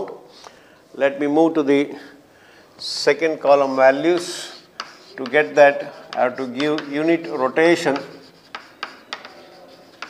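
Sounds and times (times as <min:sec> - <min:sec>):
chalk scratching: 0:03.4 - 0:10.0
chalk tapping on chalkboard: 0:03.6 - 0:10.0.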